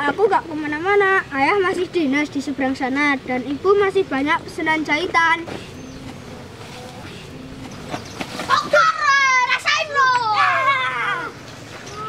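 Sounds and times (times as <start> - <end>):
children shouting and cheering: 8.5 - 12.0.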